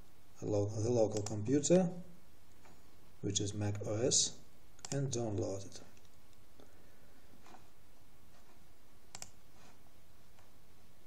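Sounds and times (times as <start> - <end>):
low room noise: 0.0 - 11.0
computer mouse clicks: 1.1 - 1.4, 4.8 - 6.4, 9.1 - 10.5.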